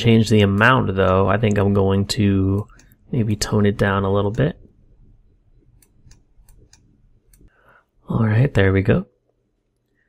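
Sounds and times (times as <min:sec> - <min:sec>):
low room hum: 0:00.0 - 0:10.0
computer mouse clicks: 0:02.5 - 0:03.0, 0:05.7 - 0:07.5.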